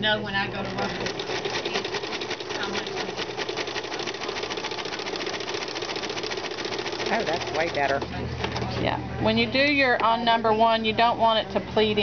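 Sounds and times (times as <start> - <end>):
sewing machine clattering: 0.7 - 8.7.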